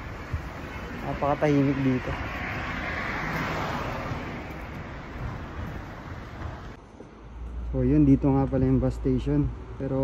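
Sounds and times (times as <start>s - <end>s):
car passing: 0.0s - 6.8s.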